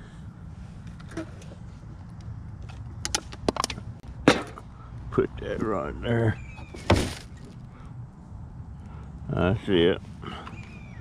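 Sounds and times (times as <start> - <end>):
sharp clicks and knocks: 2.1 - 4.6.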